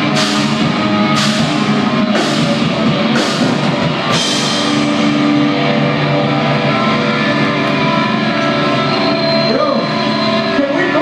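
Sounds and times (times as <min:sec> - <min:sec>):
distorted electric guitars ringing: 0:00.0 - 0:11.0.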